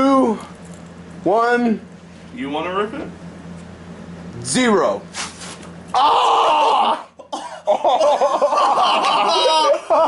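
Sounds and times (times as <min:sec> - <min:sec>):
man yelling in pain: 0:05.9 - 0:07.2, 0:09.2 - 0:09.9.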